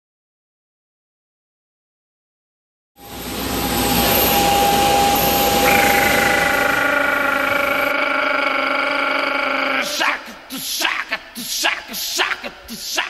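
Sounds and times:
loud mechanical drone: 3.0 - 7.9
steady whining tones: 3.0 - 8.9.

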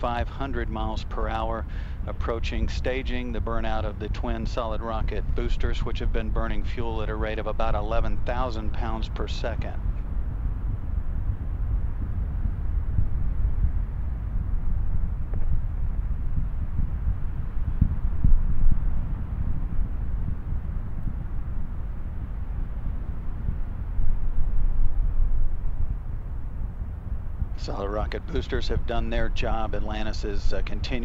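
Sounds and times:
rocket rumble: 0.0 - 31.0.

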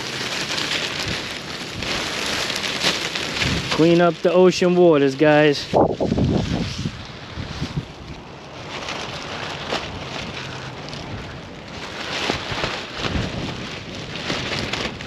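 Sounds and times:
plastic bag flapping and rustling: 0.0 - 15.0
wind buffeting microphone: 3.2 - 15.0.

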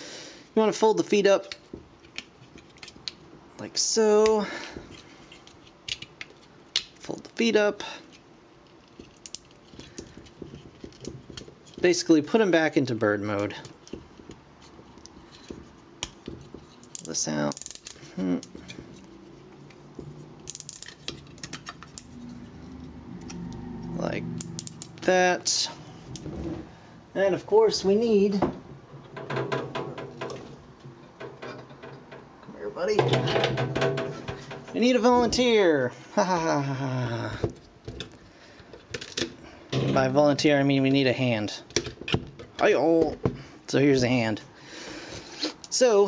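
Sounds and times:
plastic toy parts clicking: 5.4 - 6.9, 16.8 - 18.6, 20.4 - 22.1.

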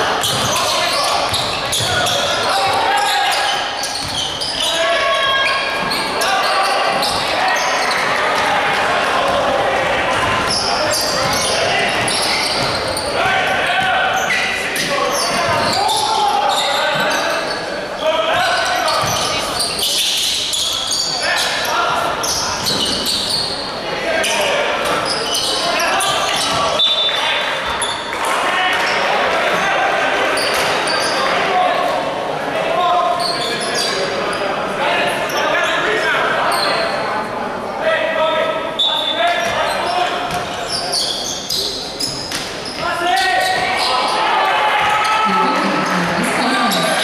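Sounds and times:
basketball bouncing on wooden court: 0.2 - 0.7, 1.3 - 2.8, 3.9 - 4.3.

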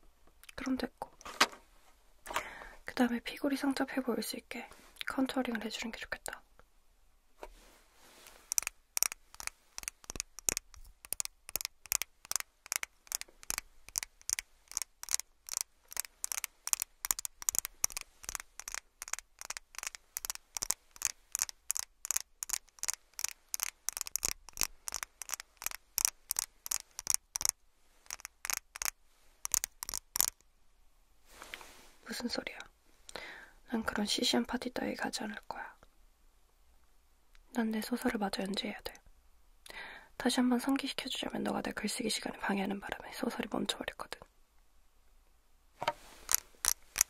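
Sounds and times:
plastic clicks and taps: 8.5 - 27.5, 45.8 - 47.0.

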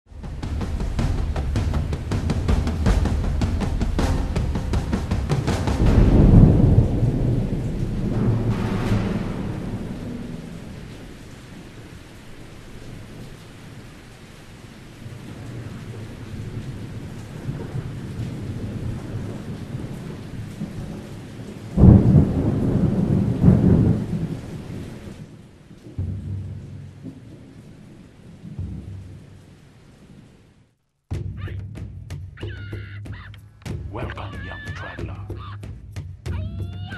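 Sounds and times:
thunder rumble: 0.1 - 30.7
rain hiss: 0.1 - 30.8.

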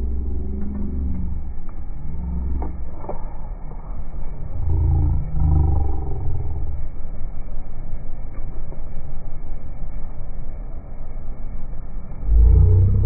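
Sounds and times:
car exhaust rumbling: 0.0 - 13.0.

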